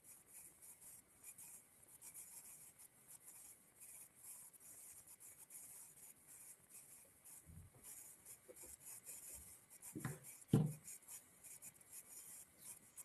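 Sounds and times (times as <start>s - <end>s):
faint scratchy rustling: 0.0s - 13.0s
soft low thump: 10.0s - 10.8s.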